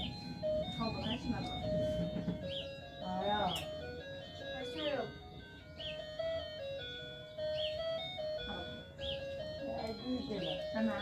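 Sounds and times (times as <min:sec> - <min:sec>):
electronic chirp: 0:00.0 - 0:11.0
electronic toy jingle: 0:00.0 - 0:11.0.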